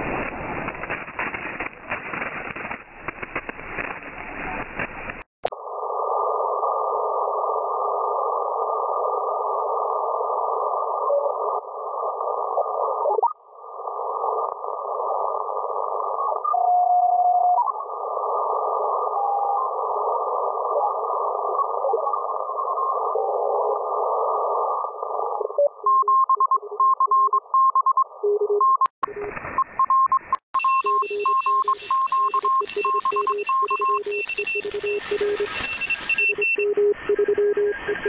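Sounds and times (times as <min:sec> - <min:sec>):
radio band noise hiss: 0:00.0 - 0:05.3
morse code beeps: 0:25.8 - 0:38.0.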